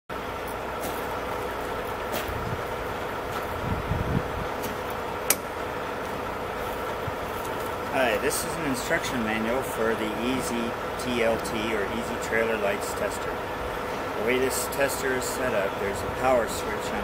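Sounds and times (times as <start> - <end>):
mechanical hum: 0.1 - 17.0.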